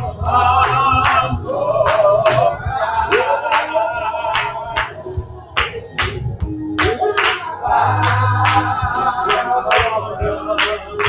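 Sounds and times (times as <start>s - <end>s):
gospel singing: 0.0s - 11.0s
hand clapping: 0.6s - 11.0s.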